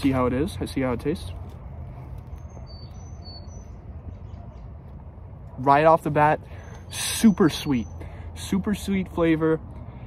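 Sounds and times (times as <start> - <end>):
low outdoor rumble: 0.0 - 10.0
high bird chirps: 2.2 - 4.9.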